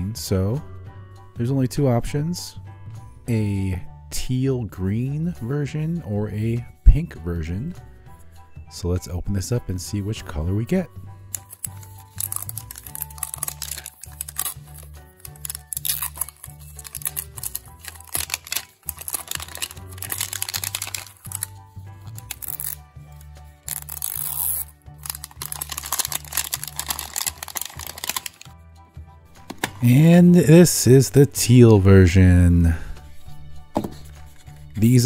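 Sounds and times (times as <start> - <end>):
wrapper crinkling and tearing: 11.4 - 28.5.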